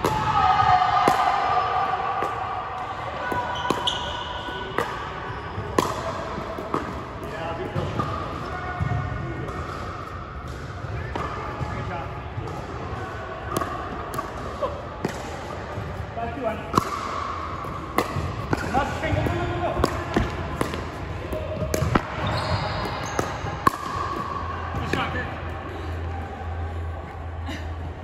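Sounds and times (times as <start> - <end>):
ball bouncing on hardwood court: 16.7 - 25.0.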